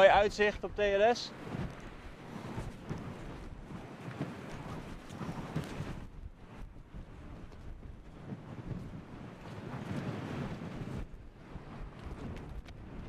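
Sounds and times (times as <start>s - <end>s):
gusty wind buffeting microphone: 0.0s - 13.0s.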